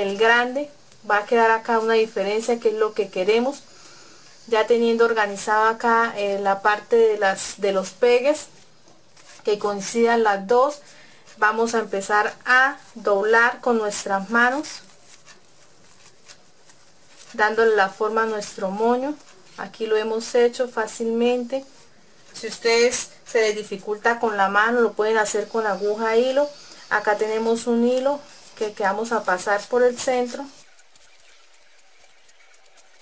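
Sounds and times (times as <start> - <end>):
satin ribbon rustling: 0.0 - 33.0.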